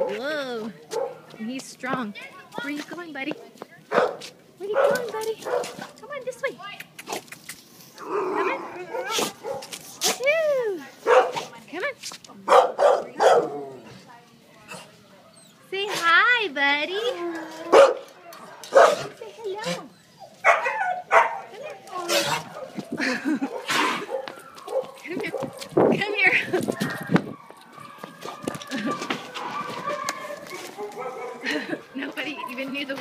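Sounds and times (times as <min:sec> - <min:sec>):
dog barking and yipping: 0:03.9 - 0:05.9, 0:08.4 - 0:09.7, 0:11.1 - 0:11.5, 0:12.5 - 0:13.5, 0:17.7 - 0:18.1, 0:18.7 - 0:22.8, 0:23.4 - 0:25.6, 0:29.3 - 0:31.4.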